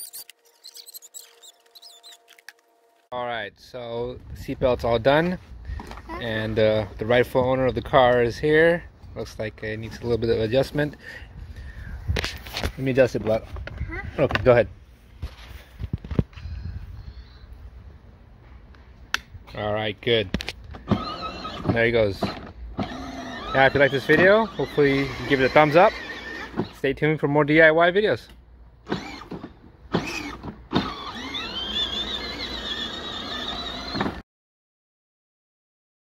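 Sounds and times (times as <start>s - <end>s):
electric toy car motor whining: 0.0s - 2.4s, 20.8s - 26.8s, 28.9s - 34.2s
low outdoor background: 0.0s - 34.2s.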